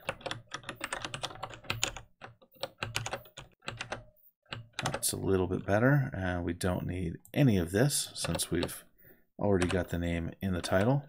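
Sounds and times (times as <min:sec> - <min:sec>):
computer keyboard typing: 0:00.0 - 0:05.0, 0:08.2 - 0:08.8, 0:09.6 - 0:09.9.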